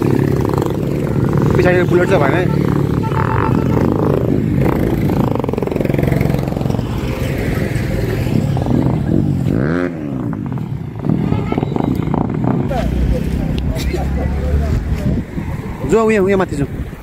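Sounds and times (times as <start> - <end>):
motorcycle engine running: 0.0 - 13.4
engine revving: 0.0 - 14.8
road traffic: 0.0 - 17.0.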